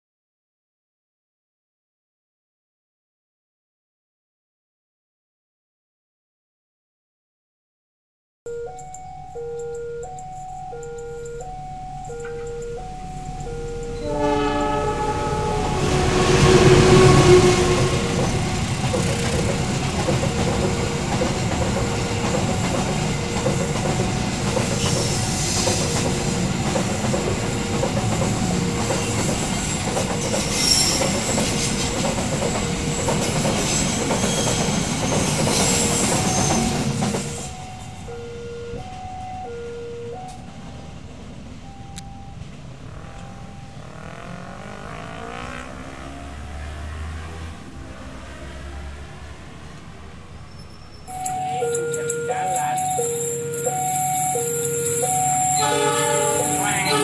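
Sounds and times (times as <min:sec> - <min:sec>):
freight train rolling past: 0:12.3 - 0:52.0, 0:52.8 - 0:57.0
locomotive horn: 0:13.4 - 0:19.9, 0:51.5 - 0:57.0
level crossing two-tone chime: 0:51.1 - 0:57.0.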